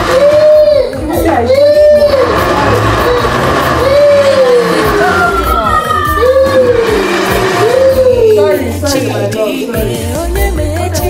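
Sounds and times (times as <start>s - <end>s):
blender motor whirring: 0.0s - 9.1s.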